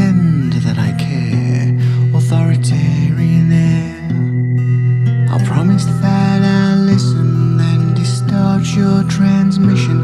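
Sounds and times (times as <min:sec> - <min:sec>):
sustained bass notes: 0:00.0 - 0:10.0
wavering guitar melody: 0:00.0 - 0:10.0.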